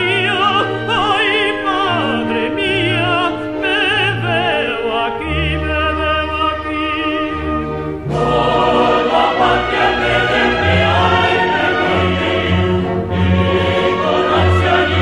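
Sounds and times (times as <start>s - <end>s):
orchestra: 0.0s - 15.0s
solo tenor singing: 0.0s - 15.0s
men's chorus singing: 8.0s - 15.0s.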